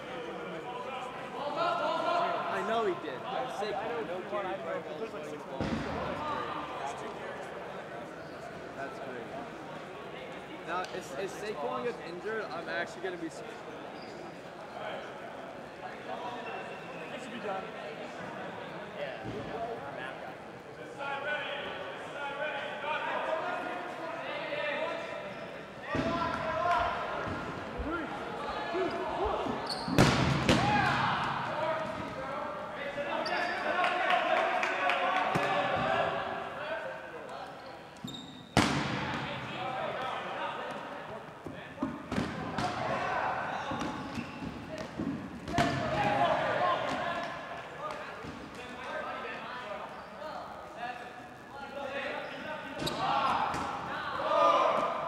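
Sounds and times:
indistinct chatter echoing: 0:00.0 - 0:55.0.

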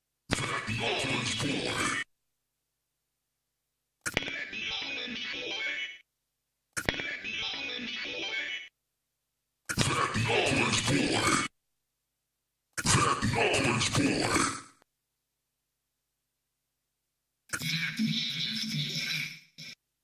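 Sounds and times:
robotic synthesized multi-voice speech: 0:00.3 - 0:02.1, 0:04.0 - 0:06.0, 0:06.8 - 0:08.7, 0:09.7 - 0:11.5, 0:12.8 - 0:14.7, 0:17.5 - 0:19.8.

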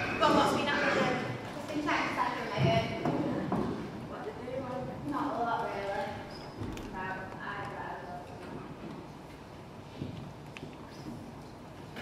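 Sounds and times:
footsteps on wooden stage: 0:02.5 - 0:12.0.

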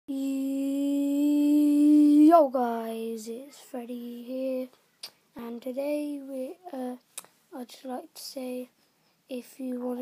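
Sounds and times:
boy singing a long note: 0:00.1 - 0:02.5.

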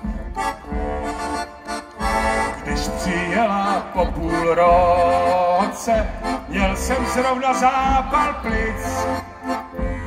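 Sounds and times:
accordion melody: 0:00.0 - 0:10.0
live folk band playing: 0:00.0 - 0:10.0.

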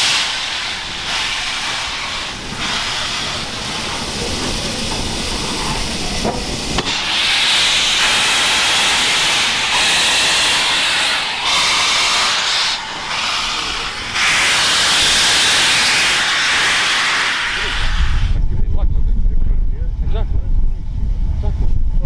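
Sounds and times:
steam hissing from locomotive: 0:00.0 - 0:18.4.

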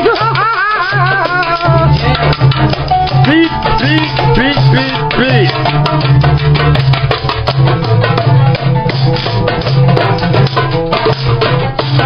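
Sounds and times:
hand drum rhythm: 0:00.0 - 0:12.0
low bass notes: 0:01.6 - 0:12.0.

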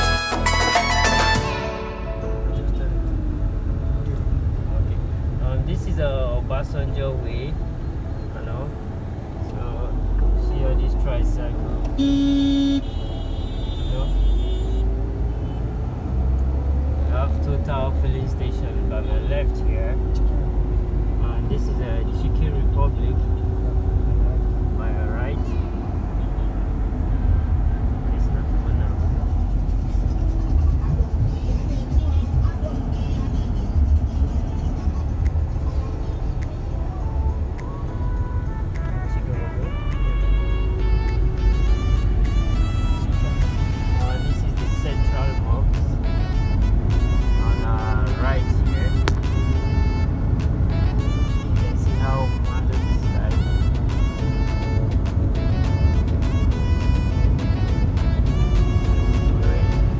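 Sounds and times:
music with pitched notes: 0:00.0 - 0:03.0
car engine and tyres rumbling: 0:00.0 - 0:59.9.

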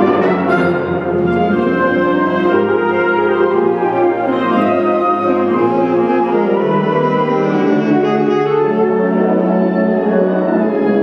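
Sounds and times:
saxophone solo: 0:00.0 - 0:11.0.

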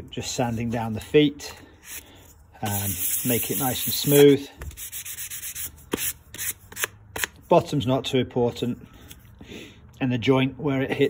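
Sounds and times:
sandpaper sanding wood: 0:02.6 - 0:06.9.

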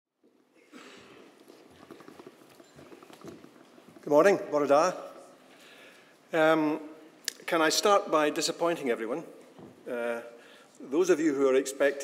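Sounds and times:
room noise: 0:00.2 - 0:12.0.

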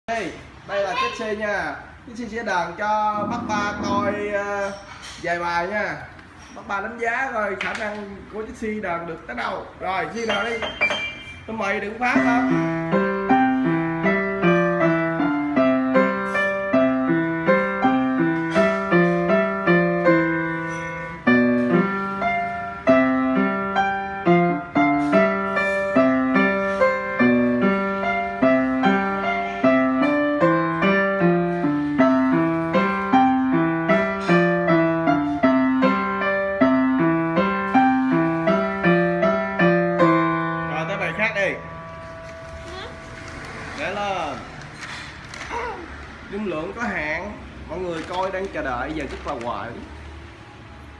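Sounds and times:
person speaking: 0:02.2 - 0:04.9, 0:11.5 - 0:12.8
upright piano playing: 0:02.2 - 0:05.8, 0:09.8 - 0:44.4.

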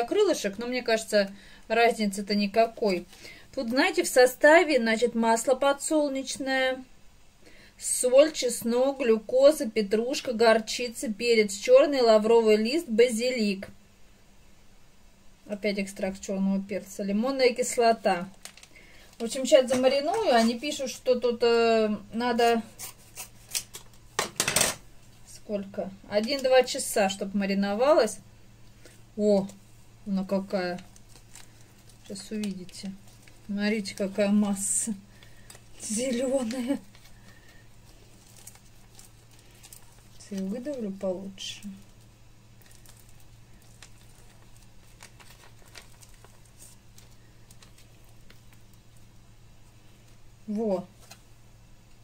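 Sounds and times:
foil sachet crinkling: 0:17.7 - 0:21.1, 0:22.4 - 0:24.1, 0:28.7 - 0:49.2
plastic packet rustling: 0:17.8 - 0:20.8, 0:28.7 - 0:49.2
steady low hum: 0:24.8 - 0:52.0.

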